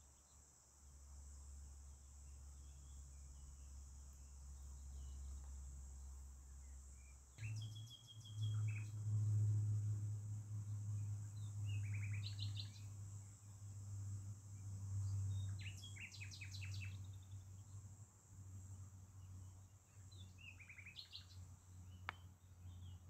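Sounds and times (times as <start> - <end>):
high insect drone: 0.0 - 23.0
songbird chirping: 2.2 - 13.6, 14.6 - 17.9, 18.6 - 23.0
loud low hum: 2.2 - 17.8.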